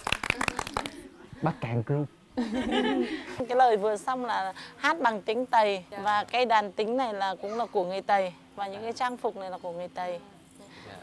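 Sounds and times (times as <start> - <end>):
people clapping: 0.0 - 1.1.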